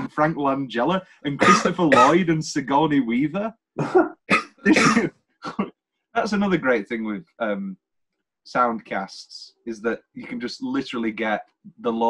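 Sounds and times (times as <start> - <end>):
man coughing: 0.0 - 7.6
man laughing: 0.0 - 7.7, 8.6 - 12.0.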